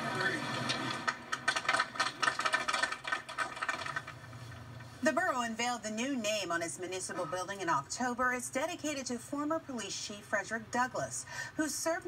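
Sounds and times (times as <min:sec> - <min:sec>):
crowd applauding: 0:00.0 - 0:04.1.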